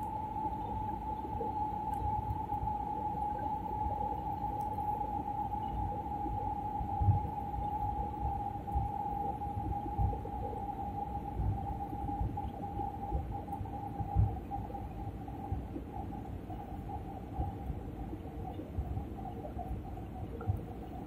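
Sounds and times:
mid-pitched whine: 0.0s - 21.0s.

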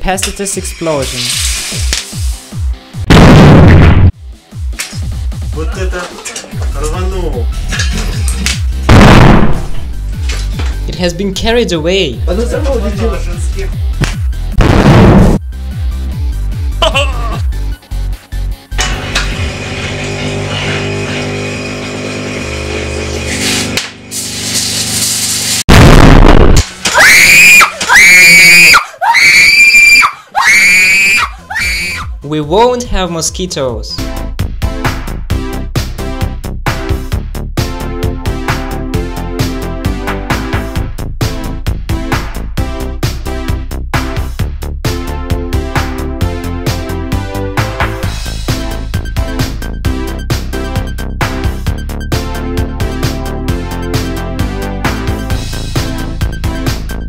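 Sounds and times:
background music: 0.0s - 20.4s, 26.6s - 57.0s
capacitor bursting with loud blast: 3.0s - 4.2s, 8.9s - 9.9s, 14.6s - 15.4s, 25.7s - 27.5s
loud burst of noise: 22.3s - 26.7s
woman screaming: 26.8s - 32.1s.

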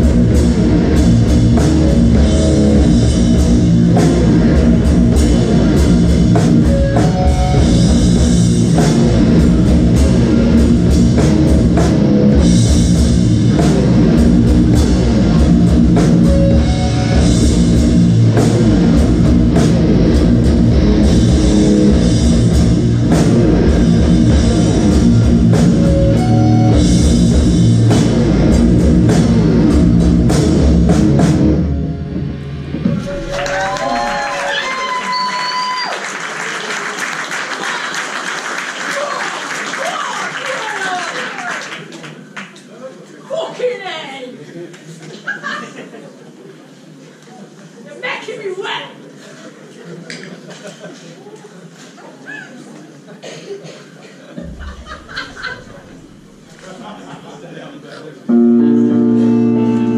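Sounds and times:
heavy metal band playing: 0.0s - 34.5s, 54.4s - 56.6s, 58.3s - 59.9s.

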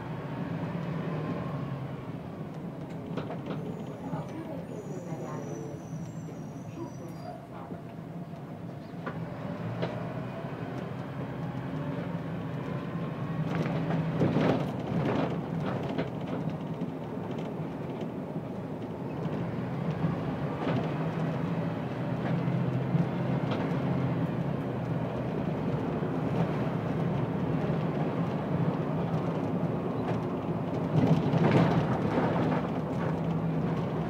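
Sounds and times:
bus engine droning: 0.0s - 34.0s
road noise: 0.0s - 34.0s.

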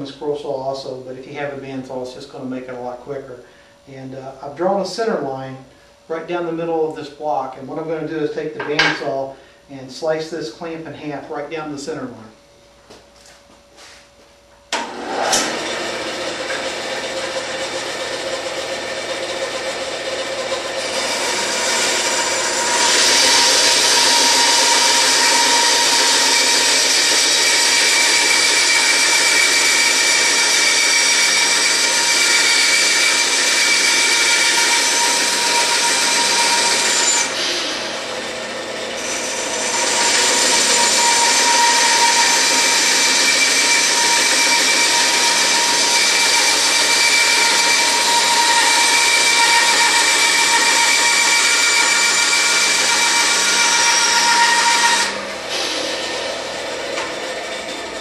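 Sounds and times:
bandsaw cutting wood: 14.8s - 58.0s.

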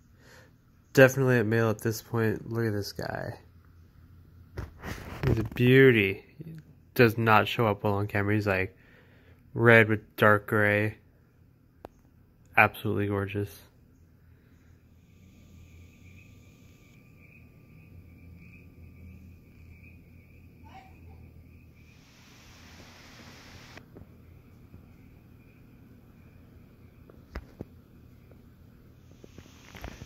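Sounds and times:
low steady hum: 0.0s - 29.4s
thin high whine: 14.9s - 21.0s, 21.6s - 23.9s, 29.0s - 30.0s.

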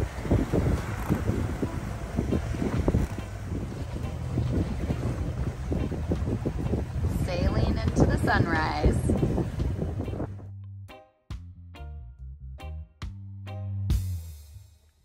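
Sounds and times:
wind buffeting microphone: 0.0s - 10.5s.

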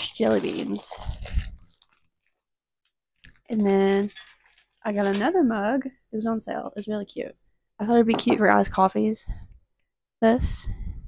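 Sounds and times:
plastic bag crinkling: 0.0s - 2.5s, 3.2s - 5.4s.

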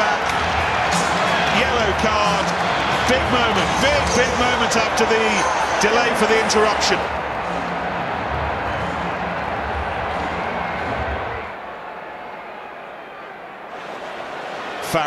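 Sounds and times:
stadium crowd murmur: 0.0s - 15.0s.

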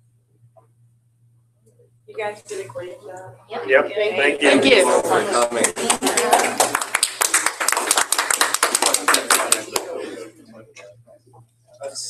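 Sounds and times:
small group applauding: 4.3s - 10.5s.

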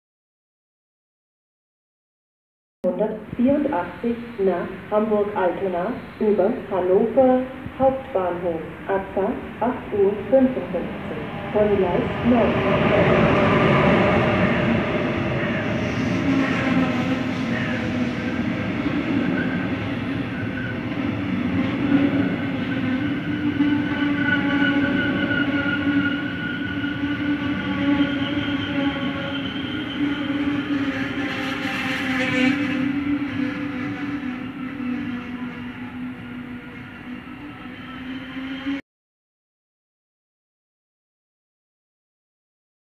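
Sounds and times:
steady whining tones: 3.1s - 38.8s
train wheels rumbling: 3.4s - 38.8s.

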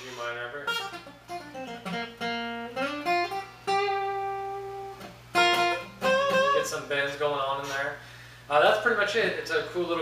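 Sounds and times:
acoustic guitar lead line: 0.0s - 10.0s.

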